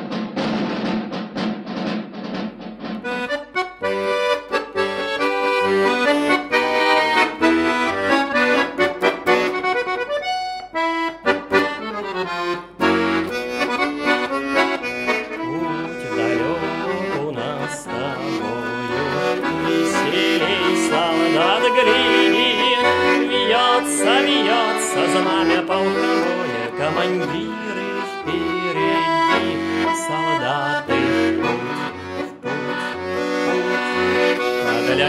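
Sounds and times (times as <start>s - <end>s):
button accordion playing a march: 3.0s - 35.0s.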